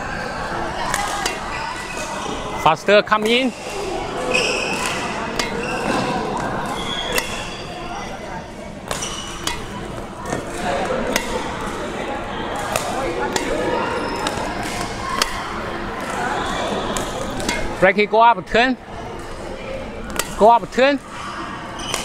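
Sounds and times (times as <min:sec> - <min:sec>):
rackets hitting shuttlecocks: 0:00.2 - 0:08.2, 0:08.8 - 0:17.8, 0:19.1 - 0:21.2, 0:21.8 - 0:22.0.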